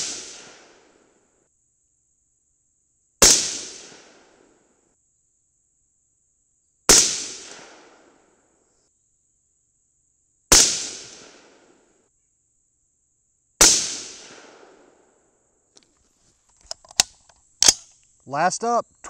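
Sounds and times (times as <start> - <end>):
rifle shots: 3.2 - 4.2, 10.5 - 11.5, 13.6 - 14.7.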